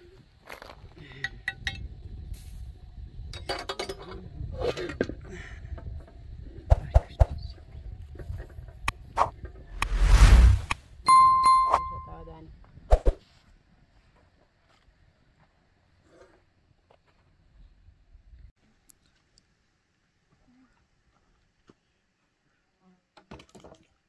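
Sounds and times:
whoosh: 0:09.8 - 0:12.0
bell-like ding: 0:11.1 - 0:12.3.

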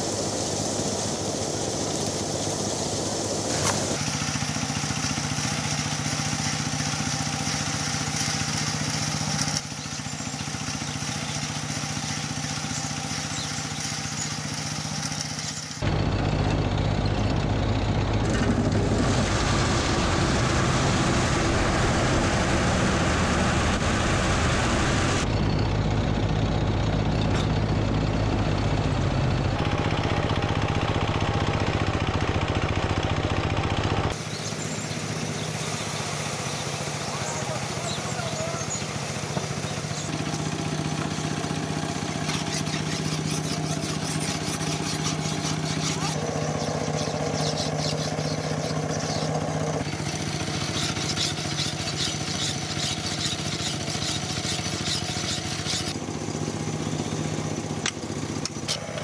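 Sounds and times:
threshing machine engine drone: 0:00.0 - 0:59.0.

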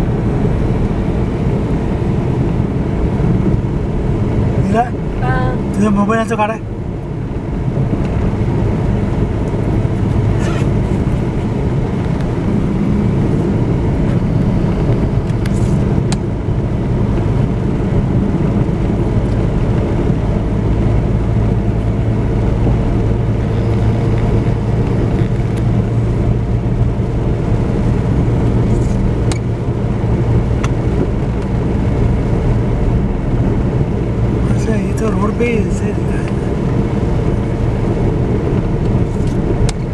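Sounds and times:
vehicle road and engine hum: 0:00.0 - 0:39.9.

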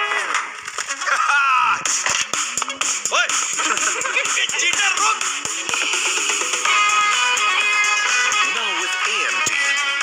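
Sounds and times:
upbeat music with percussive hits: 0:01.7 - 0:10.0
man laughing: 0:03.5 - 0:05.0.

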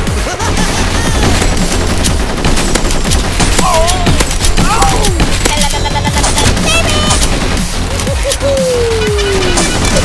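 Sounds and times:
rapid gunfire: 0:00.0 - 0:08.4, 0:09.4 - 0:10.0.

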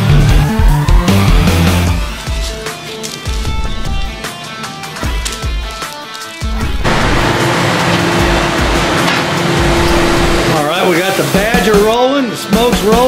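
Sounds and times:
rock background music: 0:00.0 - 0:13.0
flames rushing: 0:06.8 - 0:10.6.

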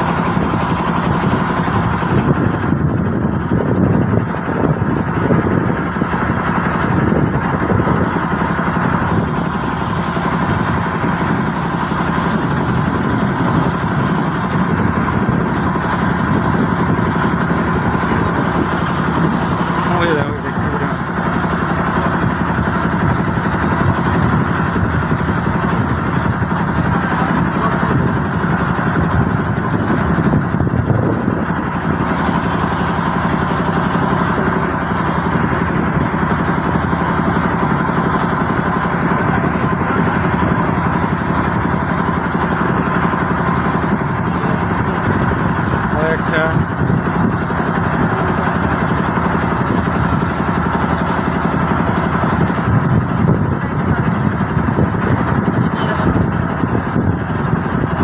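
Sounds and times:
boat engine running: 0:00.0 - 0:58.0.

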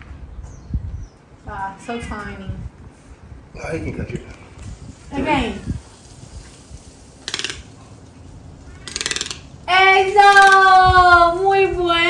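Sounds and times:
toucan rattling clicks: 0:07.2 - 0:07.8, 0:08.8 - 0:09.5.

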